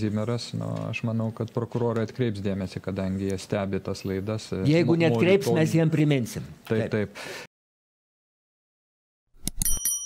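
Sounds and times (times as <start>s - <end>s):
short bell ding: 9.6s - 10.0s.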